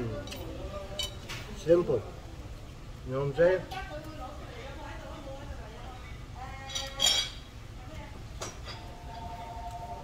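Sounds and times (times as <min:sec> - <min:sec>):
utensils clinking on china dishes: 0:00.2 - 0:01.3, 0:06.6 - 0:07.5, 0:08.4 - 0:09.3.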